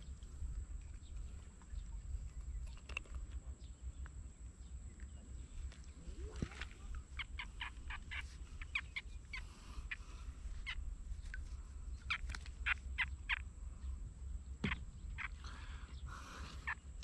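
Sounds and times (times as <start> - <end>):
birds calling: 0.0 - 17.0.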